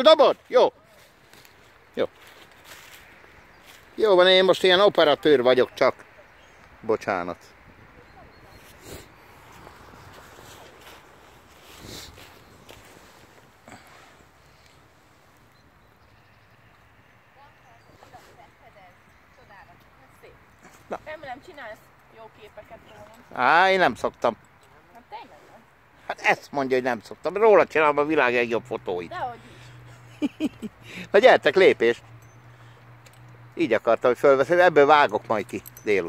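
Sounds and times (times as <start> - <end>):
faint outdoor background noise: 0.0 - 36.0.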